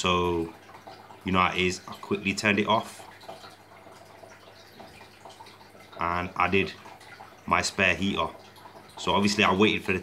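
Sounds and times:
aquarium water running: 0:00.0 - 0:10.0.

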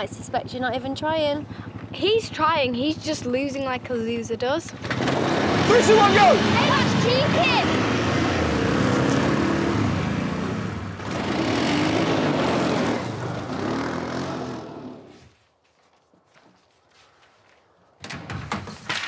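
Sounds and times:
quad bike engines revving: 0:00.0 - 0:15.2
rustling: 0:15.0 - 0:18.0.

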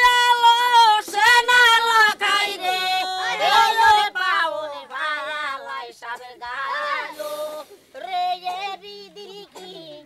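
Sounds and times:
women singing unaccompanied: 0:00.0 - 0:10.0.

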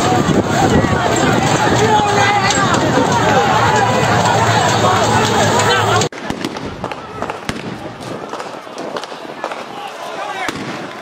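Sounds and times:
crowd shouting: 0:00.0 - 0:11.0
gunshots: 0:06.1 - 0:09.8, 0:10.4 - 0:11.0.

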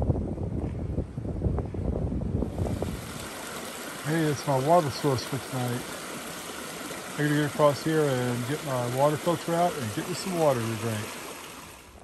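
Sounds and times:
wind buffeting microphone: 0:00.0 - 0:11.8
creek running over rocks: 0:02.4 - 0:12.0.

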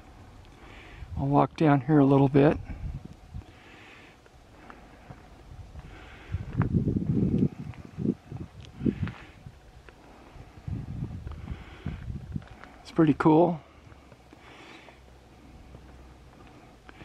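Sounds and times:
footsteps walking: 0:04.2 - 0:17.0.

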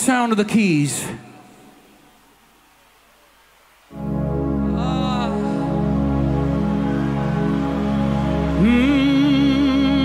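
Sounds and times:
keyboard held chord: 0:03.9 - 0:10.0.

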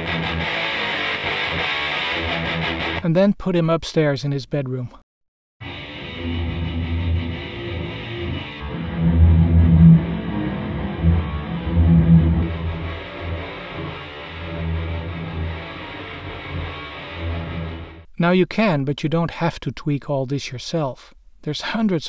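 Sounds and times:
muffled distorted electric guitar: 0:00.0 - 0:03.0, 0:05.6 - 0:18.1.

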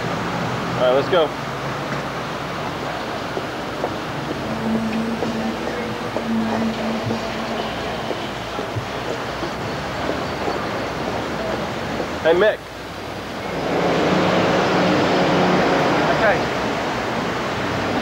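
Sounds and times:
traffic noise: 0:00.0 - 0:18.0
low steady hum: 0:02.1 - 0:14.5.

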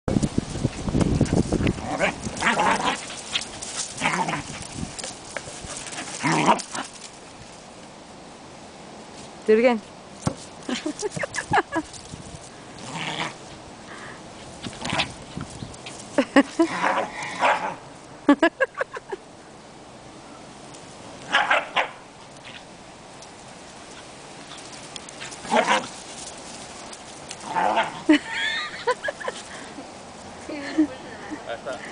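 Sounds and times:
puppy barking: 0:21.3 - 0:22.0.

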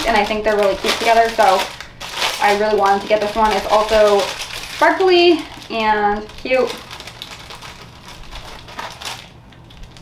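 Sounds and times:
plastic bag crackling: 0:00.0 - 0:10.0.

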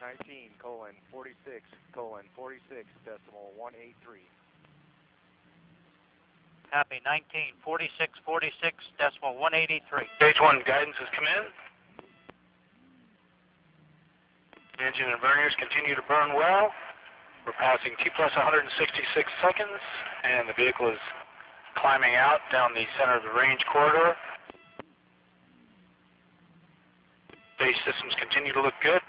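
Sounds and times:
faint hiss and low hum: 0:00.0 - 0:29.0.

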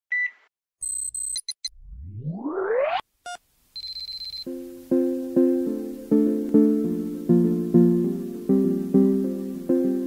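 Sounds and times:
rising synth pitch sweep: 0:01.7 - 0:03.0
steady high electronic tone: 0:01.7 - 0:03.0.

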